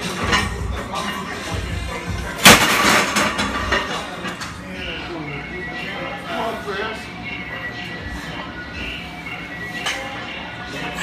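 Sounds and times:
gym background music: 0.0s - 11.0s.

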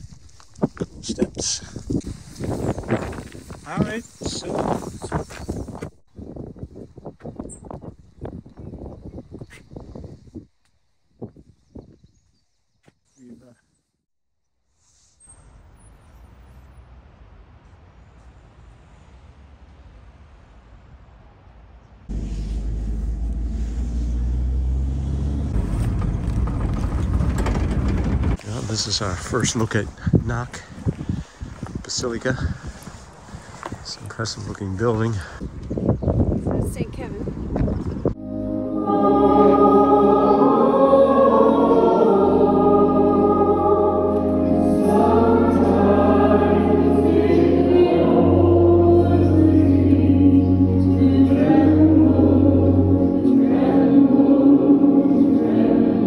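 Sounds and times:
road noise: 15.1s - 56.0s
bus engine drone: 15.2s - 29.2s, 38.2s - 56.0s
choir holding sustained notes: 38.2s - 56.0s.

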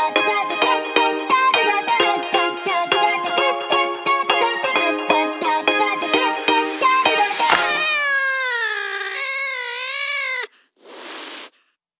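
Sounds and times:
cat meowing: 7.2s - 11.5s
hiss burst: 10.8s - 11.6s.

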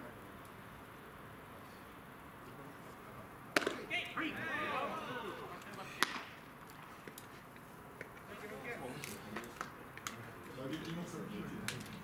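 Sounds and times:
baseball smacking into mitt: 3.5s - 3.9s, 6.0s - 6.9s.

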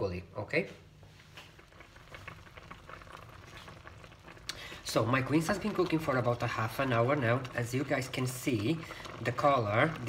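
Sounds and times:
syrup bubbling and crackling: 0.9s - 10.0s.

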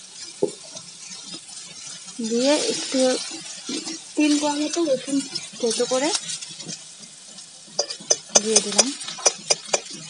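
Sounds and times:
metal spatula scraping vegetables: 0.0s - 10.0s
oil sizzling: 0.0s - 10.0s
spatula clicking against pan: 7.8s - 10.0s.

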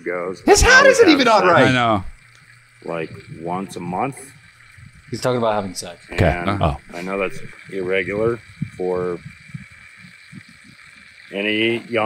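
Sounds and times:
faint steady hiss: 0.0s - 12.0s
soft low thumps: 8.1s - 10.6s.

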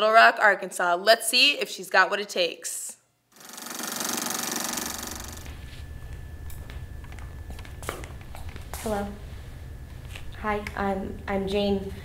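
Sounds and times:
rapid buzzing rattle: 3.3s - 5.7s
low rumble: 5.3s - 12.0s.

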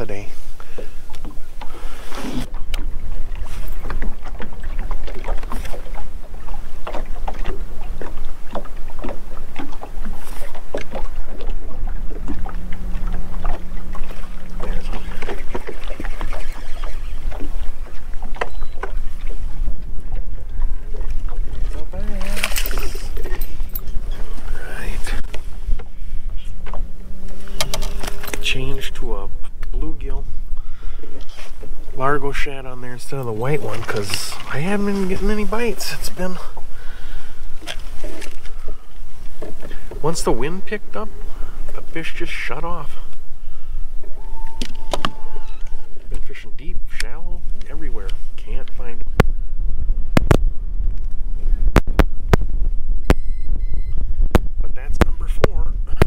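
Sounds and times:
water against boat hull: 0.0s - 56.0s
wind rumble on microphone: 0.0s - 56.0s
knocks and clicks from fishing rod: 27.5s - 28.5s, 50.1s - 52.5s, 54.2s - 55.1s.

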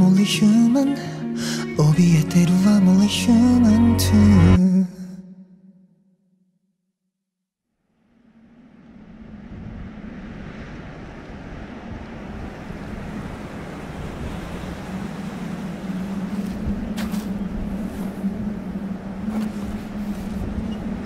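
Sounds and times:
rushing ambient noise: 7.9s - 21.0s.

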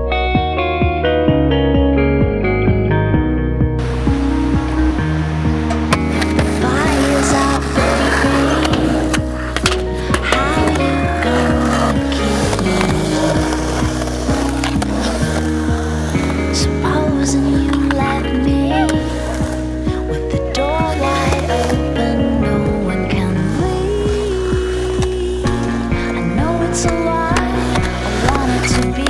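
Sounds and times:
music track: 0.0s - 29.0s
skateboard wheels rolling on concrete: 2.3s - 29.0s
skateboard clacks: 3.8s - 29.0s.

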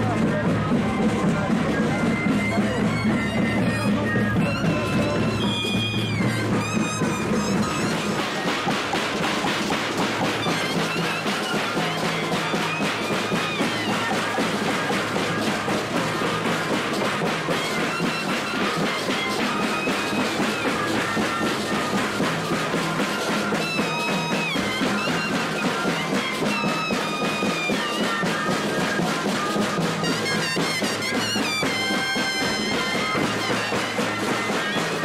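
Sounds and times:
cane flutes playing melody: 0.0s - 35.0s.

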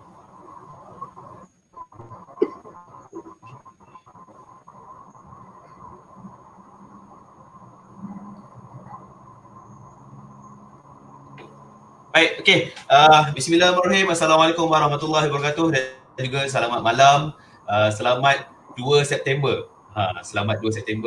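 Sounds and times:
line hum with thin tone: 0.0s - 21.0s.

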